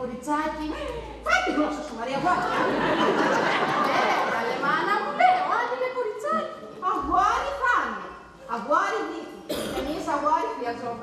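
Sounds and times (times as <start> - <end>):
harsh breathy cough: 9.5 - 10.2.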